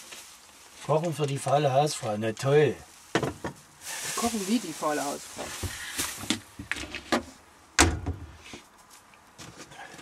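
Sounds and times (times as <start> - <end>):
cupboard clicks and knocks: 7.8 - 8.3
cupboard door banging shut: 7.8 - 8.3.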